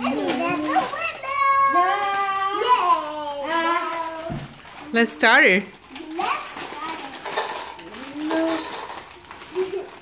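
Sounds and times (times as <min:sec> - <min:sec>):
child's voice: 0:00.0 - 0:04.5, 0:05.9 - 0:10.0
chips clattering in metal bowl: 0:00.0 - 0:10.0.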